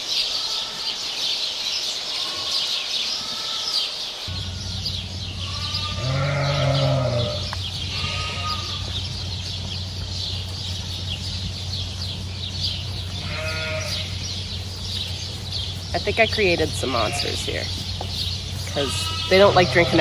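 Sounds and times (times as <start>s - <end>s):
sheep bleating: 4.4s - 9.0s, 13.1s - 14.2s, 16.8s - 17.7s, 18.7s - 20.0s.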